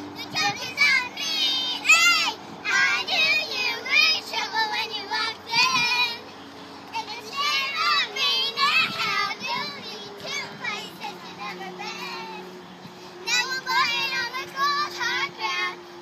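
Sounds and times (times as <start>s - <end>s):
girls singing: 0.0s - 12.6s, 13.2s - 15.8s.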